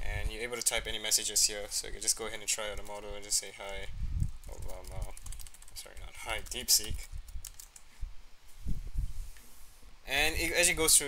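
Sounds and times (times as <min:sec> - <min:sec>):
computer keyboard typing: 0:02.6 - 0:07.8.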